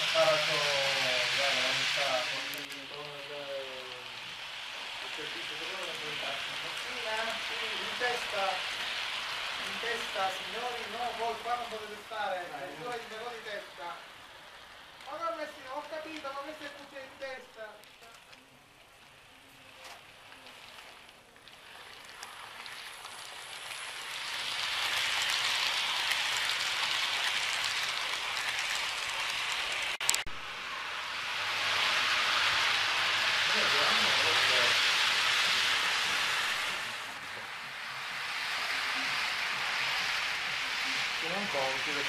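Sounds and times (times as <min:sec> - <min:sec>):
model train wheels on rails: 0:00.0 - 0:42.0.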